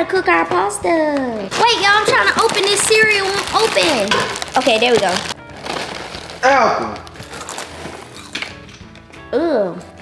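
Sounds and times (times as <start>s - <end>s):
cereal being crunched: 2.1s - 8.4s.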